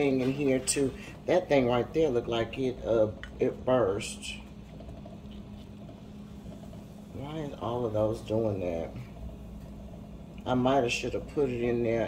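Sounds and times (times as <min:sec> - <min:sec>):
low steady hum: 0:00.0 - 0:12.0
water boiling and bubbling: 0:00.0 - 0:12.0.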